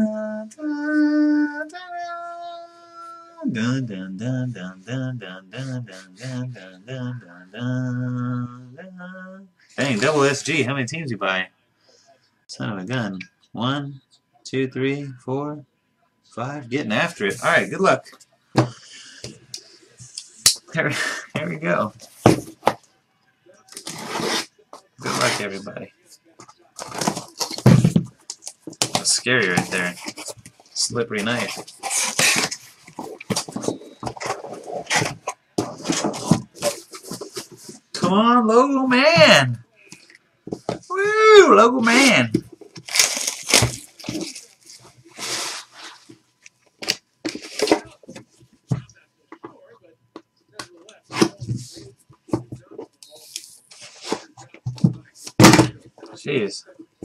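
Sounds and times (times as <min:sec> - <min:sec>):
scraping on cardboard: 0:23.8 - 0:25.6, 0:31.2 - 0:37.8
plastic wrap tearing and crinkling: 0:42.8 - 0:45.9.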